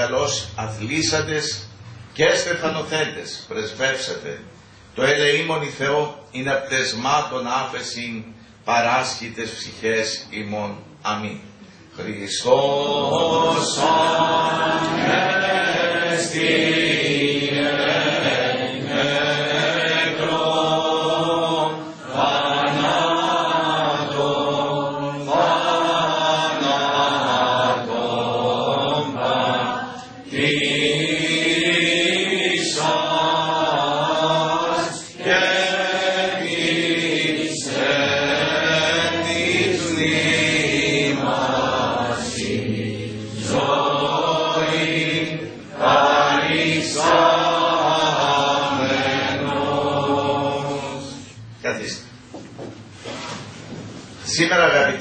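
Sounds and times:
voices chanting a hymn: 0.0 - 52.0.

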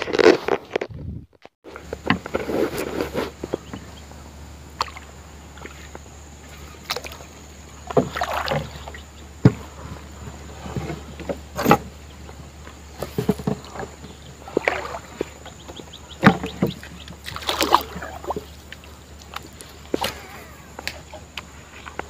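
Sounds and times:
water splashes and drips: 4.7 - 9.6, 13.1 - 21.5
paddle knocking wooden hull: 7.8 - 21.2.

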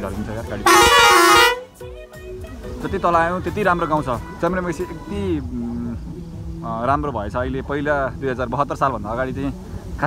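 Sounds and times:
vehicle horn two-tone blast: 0.6 - 1.8.

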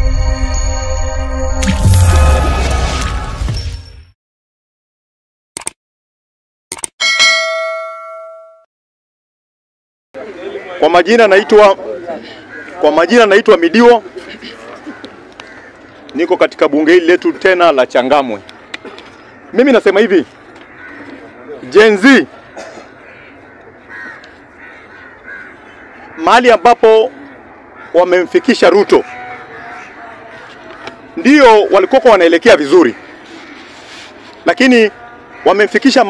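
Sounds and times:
bell-like notification ding: 7.0 - 8.7
low outdoor background: 10.2 - 36.0
faint bird calls: 14.2 - 16.2, 20.3 - 21.7, 22.3 - 26.4, 28.9 - 31.2, 32.7 - 34.4.

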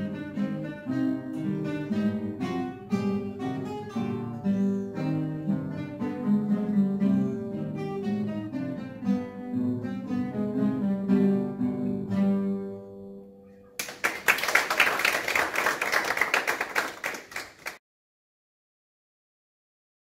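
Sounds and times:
classical guitar ensemble: 0.0 - 13.0
audience applause: 13.8 - 17.8.

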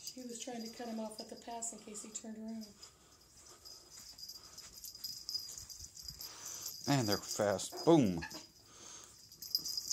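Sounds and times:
dogs scampering on carpet: 2.8 - 6.2.

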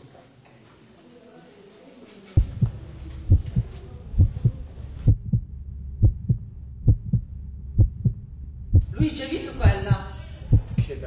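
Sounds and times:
low hum: 2.4 - 10.8
heartbeat thumps: 2.4 - 11.0.

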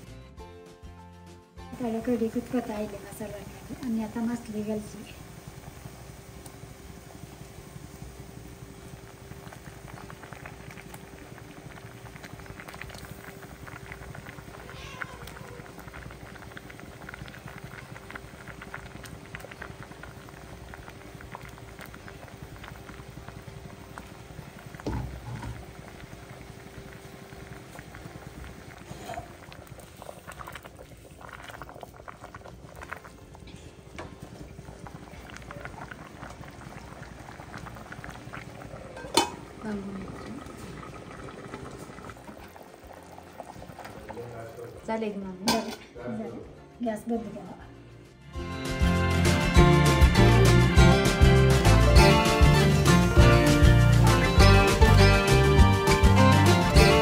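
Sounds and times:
thick curry bubbling: 2.3 - 45.9
pot knock: 39.0 - 39.4.

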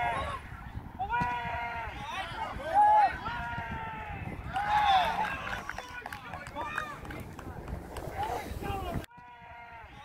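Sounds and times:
players shouting: 0.0 - 7.1
outdoor background noise: 0.0 - 10.0.

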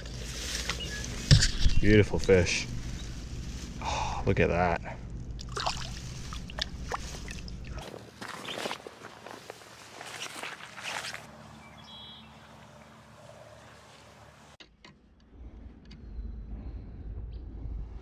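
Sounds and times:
rustling steps through tall grass: 0.0 - 3.8, 5.6 - 14.5
low wind rumble on microphone: 15.3 - 18.0.

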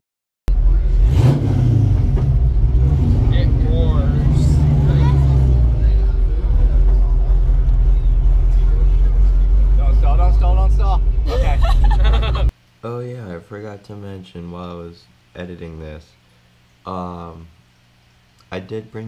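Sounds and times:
car engine revving: 0.5 - 12.5.

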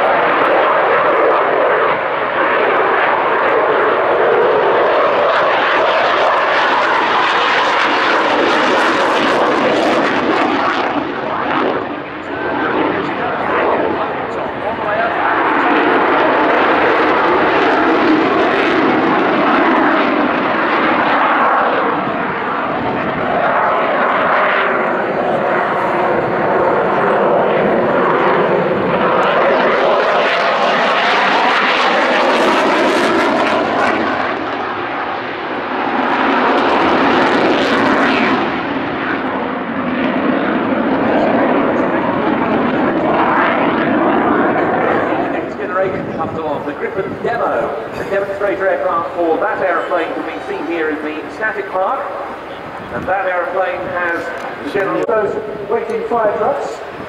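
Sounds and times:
loud jet engine noise: 0.0 - 57.0.

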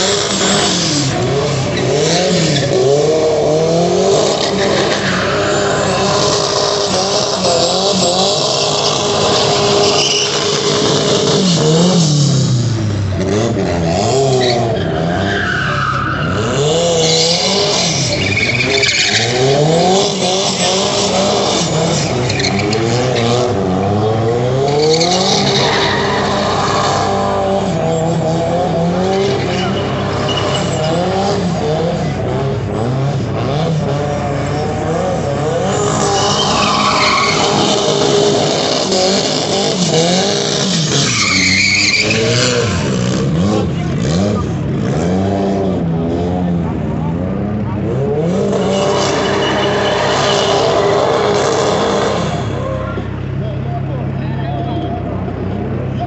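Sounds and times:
car engine revving high: 0.0 - 54.2
tyres squealing: 4.3 - 11.1, 14.4 - 23.3, 35.4 - 43.2, 48.2 - 52.6.

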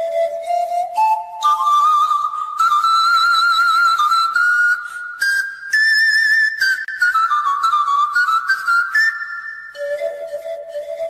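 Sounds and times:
pan flute melody: 0.0 - 11.0.

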